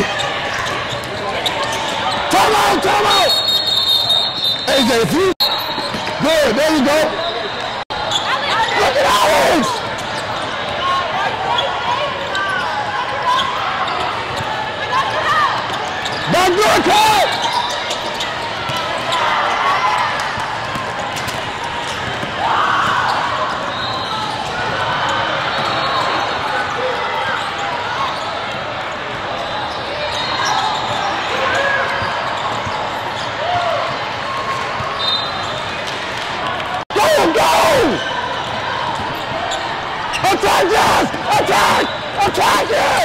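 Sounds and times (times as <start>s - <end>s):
sneaker squeaks on court: 0.1s - 2.3s, 3.3s - 4.8s, 5.4s - 6.2s, 17.3s - 19.3s, 29.4s - 33.4s
people shouting: 2.3s - 3.3s, 36.9s - 38.2s, 40.1s - 43.0s.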